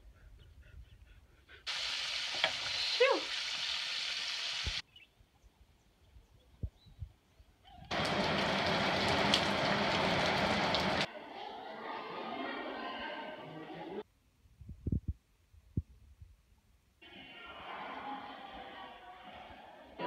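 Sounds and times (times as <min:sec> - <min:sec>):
food frying in hot oil: 0:01.7 - 0:04.8, 0:07.9 - 0:11.1
steady rain: 0:01.7 - 0:04.8, 0:07.9 - 0:11.1.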